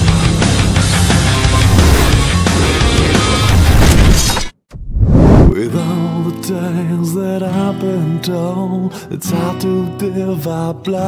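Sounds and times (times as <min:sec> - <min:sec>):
loud dense intro music: 0:00.6 - 0:04.2.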